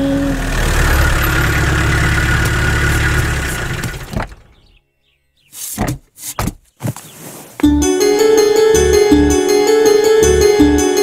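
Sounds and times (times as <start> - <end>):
car engine running: 0.0 - 4.7.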